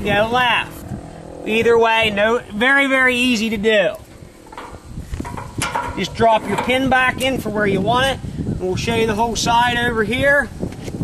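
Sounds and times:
steel parts clicking and knocking: 0:04.4 - 0:06.9.

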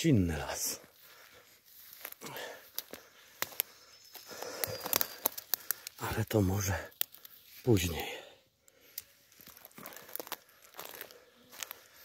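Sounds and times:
footsteps rustling through undergrowth: 0:00.0 - 0:08.2, 0:08.8 - 0:12.0
twigs snapping underfoot: 0:01.7 - 0:08.0, 0:08.6 - 0:12.0.

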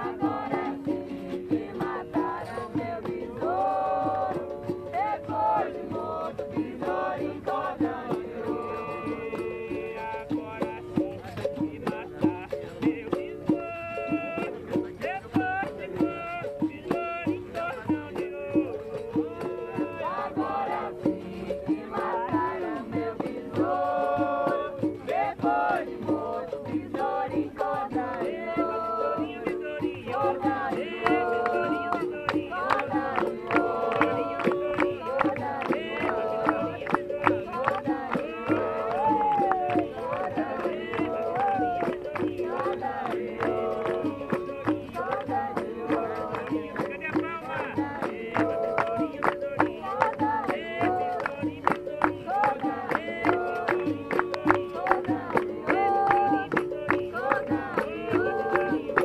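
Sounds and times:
people singing: 0:00.0 - 0:59.0.

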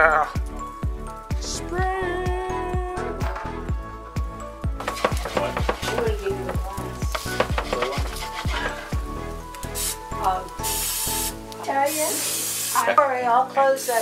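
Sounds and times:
background music with steady beat: 0:00.0 - 0:14.0
food sizzling on griddle: 0:04.8 - 0:14.0
aerosol cooking spray hiss: 0:09.6 - 0:14.0.

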